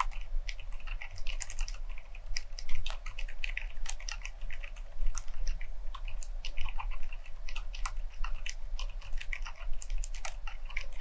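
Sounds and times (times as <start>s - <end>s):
soft mechanical keyboard typing: 0.0s - 11.0s.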